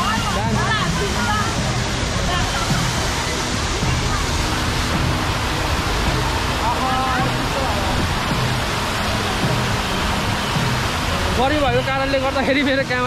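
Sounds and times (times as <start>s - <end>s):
fountain water splashing: 0.0s - 13.0s.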